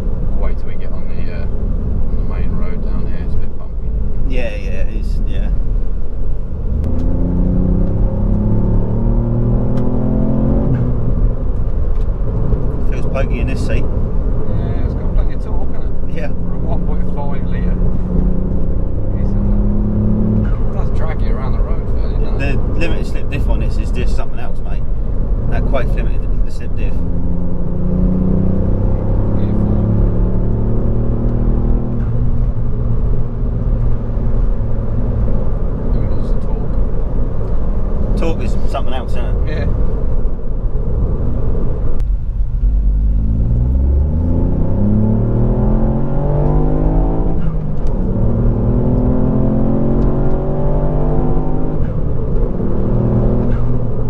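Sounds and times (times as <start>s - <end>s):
car engine accelerating: 0.0s - 54.0s
road rumble: 0.0s - 54.0s.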